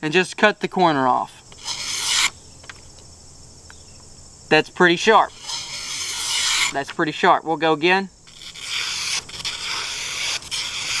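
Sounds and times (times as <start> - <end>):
knife slicing paper: 1.6 - 2.4, 5.3 - 6.8, 8.3 - 11.0.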